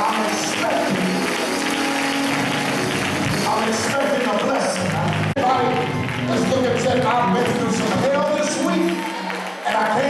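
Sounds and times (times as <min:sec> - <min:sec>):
church music sustained chords: 0:00.0 - 0:08.9
congregation clapping: 0:00.0 - 0:10.0.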